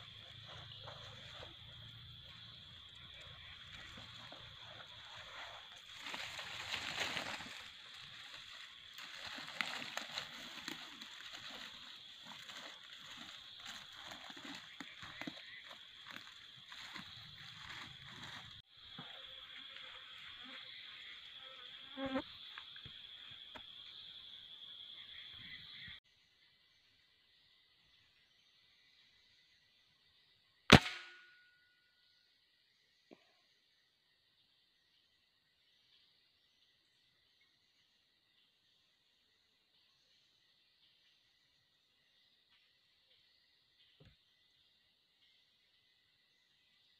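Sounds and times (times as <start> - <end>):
rustling in undergrowth: 0.0 - 20.4
insects droning: 0.0 - 46.9
rifle shot: 30.7 - 31.3.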